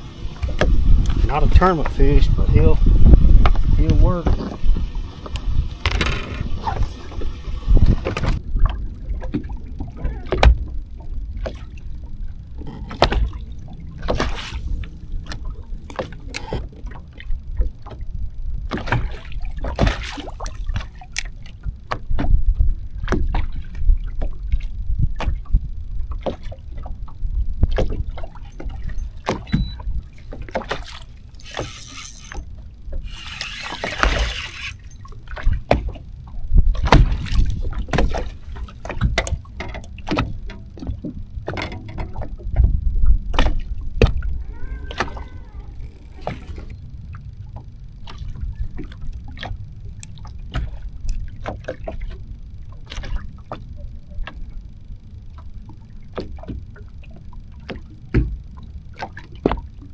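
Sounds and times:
waves slapping boat hull: 0.0 - 59.9
wind rumble on microphone: 0.0 - 59.9.

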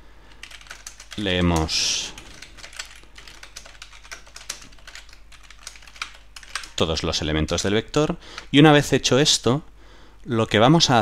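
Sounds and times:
computer keyboard typing: 0.3 - 8.6.

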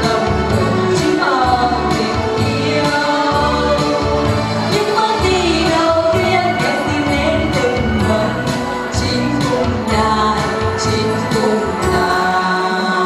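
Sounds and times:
instrumental accompaniment with bass line: 0.0 - 13.0
women singing together: 0.0 - 13.0.

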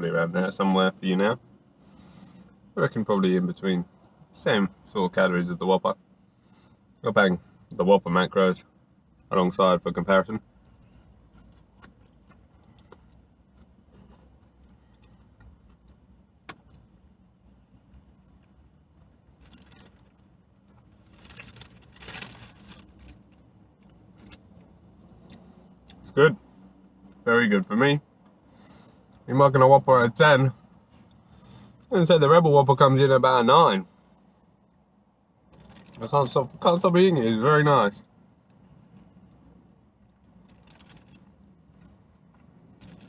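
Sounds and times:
paper wrapper rustling and crinkling: 19.4 - 20.1, 21.1 - 23.2, 40.5 - 41.3, 42.8 - 43.0.

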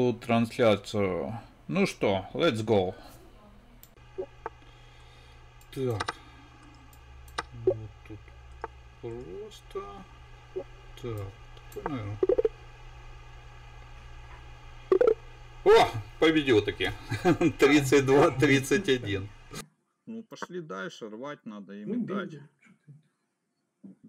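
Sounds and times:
steady buzzing hum: 0.0 - 19.6.

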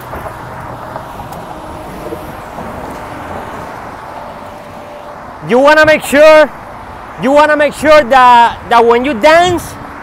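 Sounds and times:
wind rumble on microphone: 0.0 - 4.8, 8.5 - 10.0
cars and trucks passing: 0.0 - 10.0.

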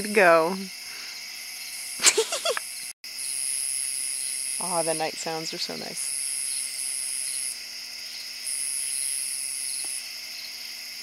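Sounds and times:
night insects chorus: 0.0 - 11.0.

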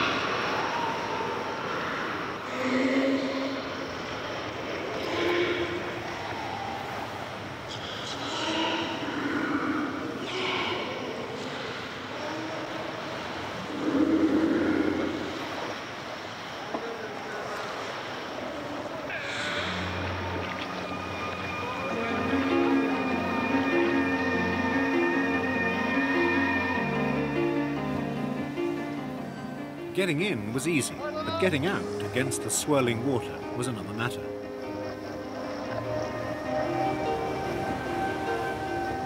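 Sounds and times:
water washing in cave: 0.0 - 27.7
sea lion calls: 5.0 - 7.2, 7.8 - 15.7, 18.1 - 27.8
background music: 19.2 - 39.0.

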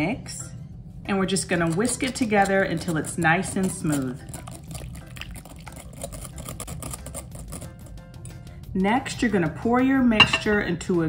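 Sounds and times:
whisk ticking against glass bowl: 1.6 - 8.0.

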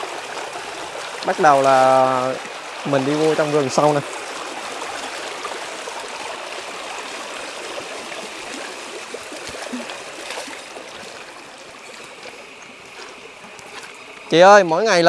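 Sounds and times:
feet splashing through water: 0.0 - 14.7
stream running over rocks: 0.0 - 15.0.

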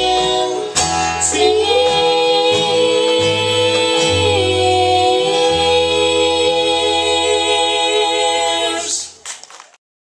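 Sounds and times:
woman singing: 0.0 - 9.2
bluegrass band playing: 0.0 - 9.4.

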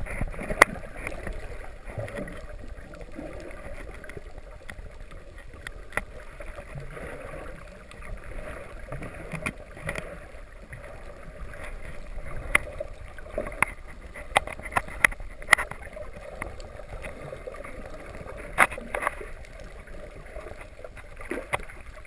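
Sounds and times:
sharp underwater clicks: 0.0 - 22.0.

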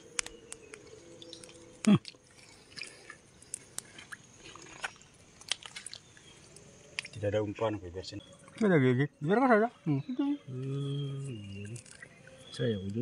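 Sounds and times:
wet mud clicking and popping: 0.1 - 6.3, 11.6 - 13.0.

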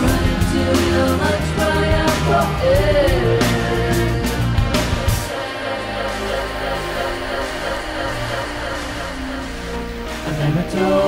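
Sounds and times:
slow instrumental music: 0.0 - 11.0.

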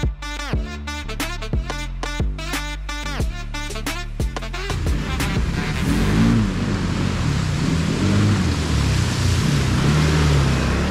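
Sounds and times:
atv engine revving: 4.7 - 10.9
water splashing: 5.1 - 10.9.

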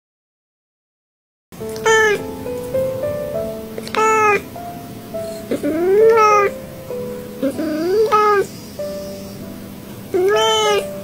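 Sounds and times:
background music held notes: 1.6 - 11.0
cat meowing: 1.7 - 2.3, 3.8 - 4.5, 5.5 - 6.6, 7.4 - 8.5, 10.1 - 11.0.

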